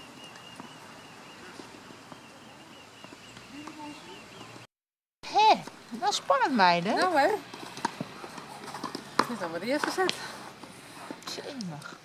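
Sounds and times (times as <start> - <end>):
tennis balls being hit: 7.4 - 10.2.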